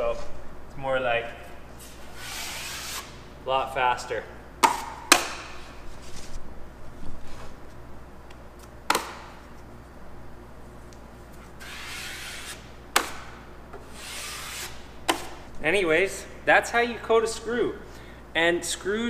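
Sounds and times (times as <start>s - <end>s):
drywall knife scraping: 1.8s - 3.1s, 11.6s - 12.6s, 13.8s - 14.8s.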